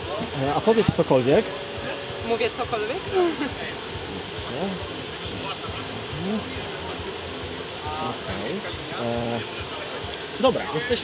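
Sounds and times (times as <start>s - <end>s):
distant voices: 0.0s - 11.0s
outdoor background noise: 0.0s - 11.0s.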